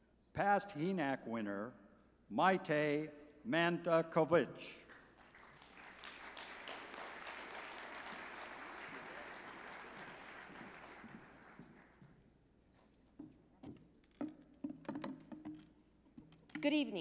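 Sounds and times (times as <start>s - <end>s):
audience applauding: 4.9s - 12.0s.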